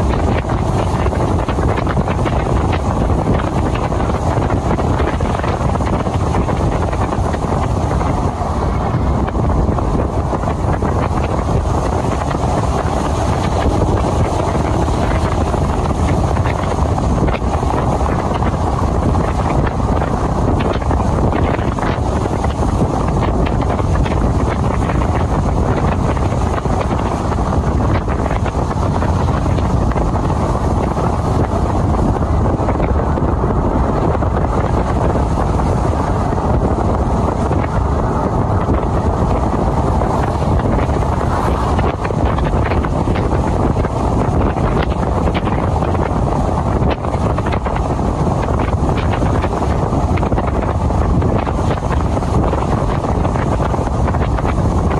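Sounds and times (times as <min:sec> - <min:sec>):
road and engine noise: 0:00.0 - 0:54.9
wind rushing over microphone: 0:00.0 - 0:54.9.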